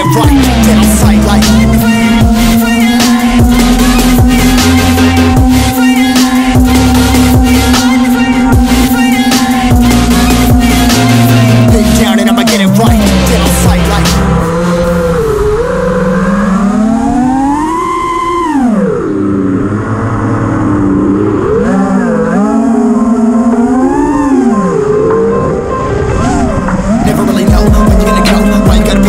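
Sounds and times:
music: 0.0s - 19.0s, 23.5s - 29.0s
drone motors whining: 0.0s - 29.0s.

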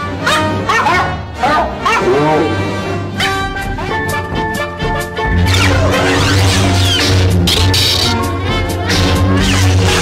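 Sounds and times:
low backing music: 0.0s - 10.0s
pitched dog barks music: 0.0s - 10.0s.

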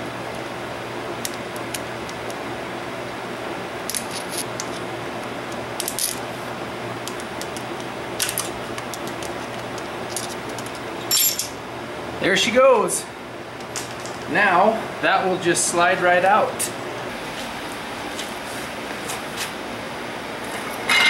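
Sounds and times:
background hum: 0.0s - 21.0s
screwdriver clicking and scraping metal: 3.9s - 4.8s, 7.0s - 10.9s.

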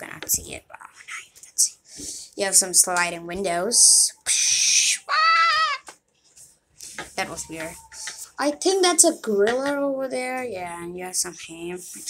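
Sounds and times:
high-pitched wavering squeal: 7.1s - 8.4s
hissing shhh: 7.9s - 8.4s.

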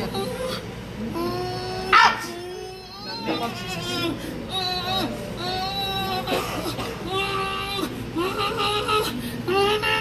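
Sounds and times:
woman moaning: 0.0s - 10.0s.

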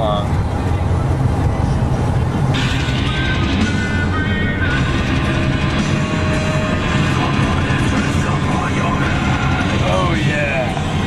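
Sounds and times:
van hum on road: 0.0s - 11.0s
loud music: 2.4s - 11.0s.

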